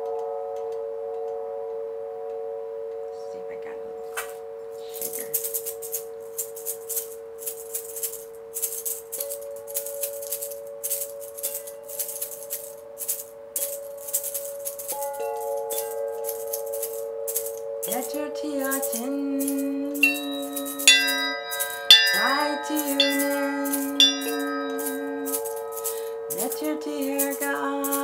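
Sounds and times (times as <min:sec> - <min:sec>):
shaker rattling: 0:04.8 - 0:28.0
metal chime bars ringing: 0:04.9 - 0:28.0.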